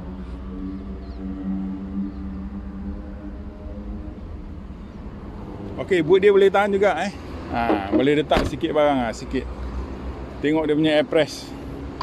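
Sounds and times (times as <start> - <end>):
low hum with overtones: 0.0 - 5.8.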